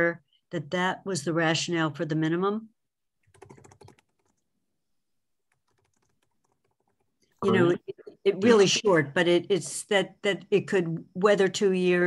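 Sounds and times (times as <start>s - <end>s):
typing on computer keyboard: 3.2s - 4.4s, 5.5s - 7.2s.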